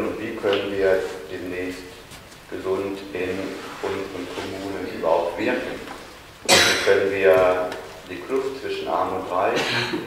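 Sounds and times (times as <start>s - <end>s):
man speaking: 0.0s - 10.0s
man coughing: 6.5s - 7.0s, 9.5s - 10.0s.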